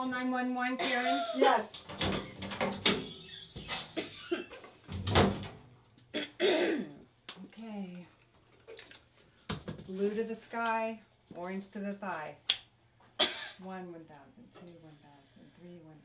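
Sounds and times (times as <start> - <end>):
girl coughing: 0.8 - 1.4, 4.0 - 4.5, 6.1 - 7.0, 13.2 - 13.6.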